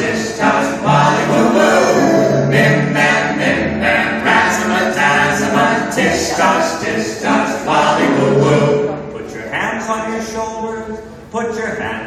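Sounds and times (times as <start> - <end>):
group singing a chant: 0.0 - 9.0.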